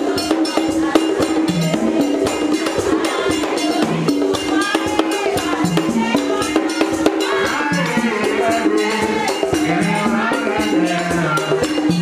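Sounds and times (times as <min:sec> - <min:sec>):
drums: 0:00.0 - 0:12.0
voices singing: 0:00.0 - 0:12.0.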